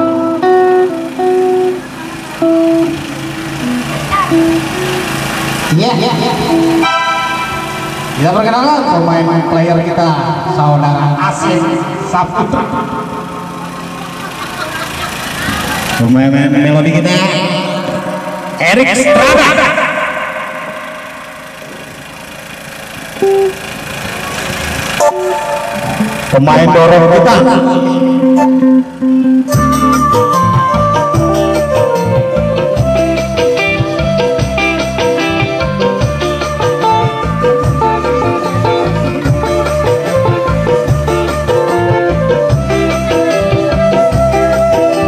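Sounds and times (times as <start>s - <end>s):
steady hum: 0.0s - 30.4s
held note over sound system: 0.0s - 45.0s
live band playing: 0.0s - 45.0s
man calling out: 5.7s - 6.8s, 16.0s - 21.2s, 26.3s - 28.5s
short beeps: 23.2s - 23.6s, 25.0s - 26.4s.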